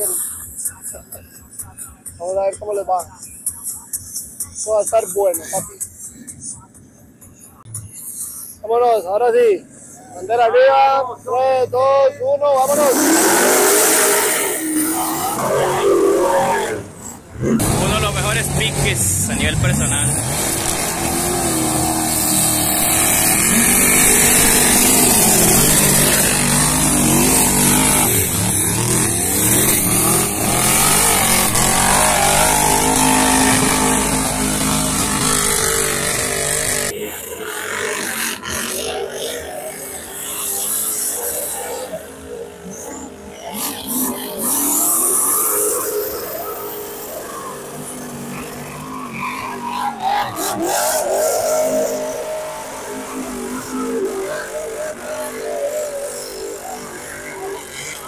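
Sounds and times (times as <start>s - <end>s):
truck engines revving: 0.0s - 58.0s.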